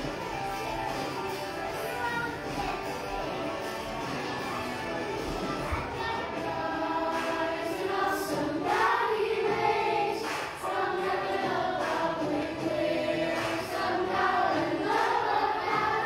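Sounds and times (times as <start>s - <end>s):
children's choir singing: 4.2s - 16.0s.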